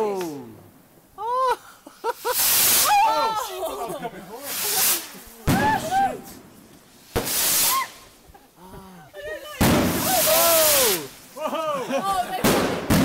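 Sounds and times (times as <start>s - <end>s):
fireworks bangs with rushing noise: 2.2s - 3.1s, 4.4s - 8.0s, 9.6s - 11.4s, 12.4s - 13.0s.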